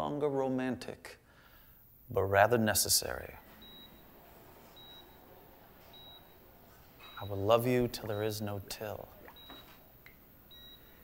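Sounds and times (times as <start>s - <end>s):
patient monitor beeping: 3.4s - 11.0s.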